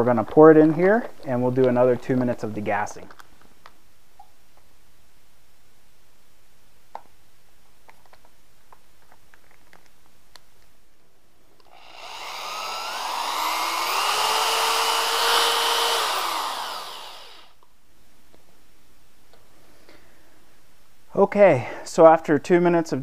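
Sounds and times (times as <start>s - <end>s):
electric drill motor whine: 11.7s - 17.6s.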